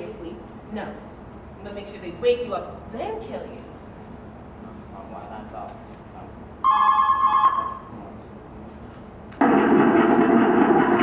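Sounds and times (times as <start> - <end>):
electronic telephone ring: 6.6 - 7.9.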